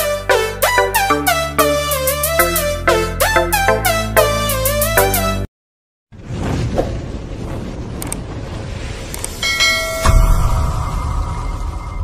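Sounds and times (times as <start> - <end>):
bell ding ringing: 9.4 - 11.0.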